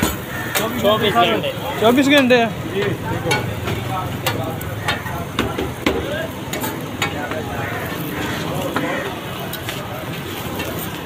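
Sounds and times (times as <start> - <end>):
flatbread sizzling on a griddle: 0.0 - 11.0
metal spatula scraping and tapping: 2.8 - 9.8.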